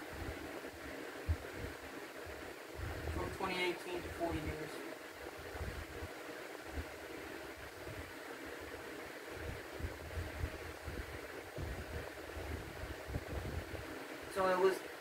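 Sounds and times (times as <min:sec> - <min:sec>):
indoor room hiss: 0:00.0 - 0:15.0
low rumbles and bumps: 0:02.8 - 0:03.3, 0:09.4 - 0:13.8.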